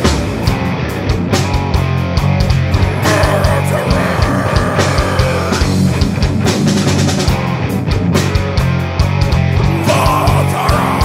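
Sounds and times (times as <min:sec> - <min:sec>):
electric guitars riffing: 0:02.5 - 0:07.5, 0:09.4 - 0:11.0.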